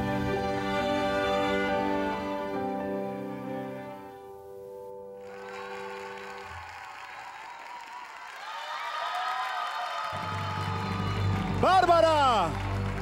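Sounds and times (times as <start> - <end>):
slow tender dance music: 0.0 - 6.4
studio audience applause: 5.2 - 13.0.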